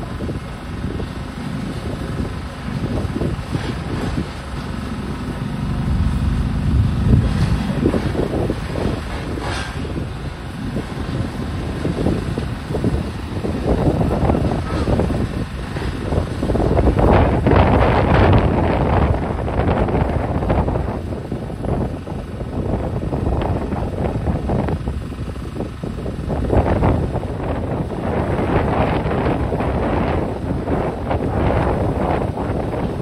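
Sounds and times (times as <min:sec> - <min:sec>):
diesel engine rumbling: 0:00.0 - 0:33.0
wind buffeting microphone: 0:00.0 - 0:33.0.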